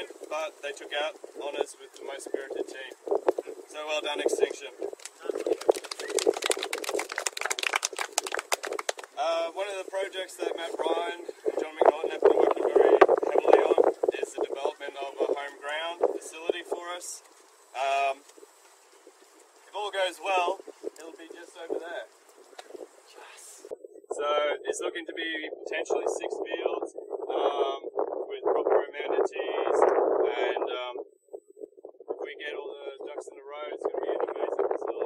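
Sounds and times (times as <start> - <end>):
voices: 0.0 - 18.3, 19.6 - 31.0
wind noise on microphone: 0.0 - 35.0
group of people clapping: 5.0 - 9.2.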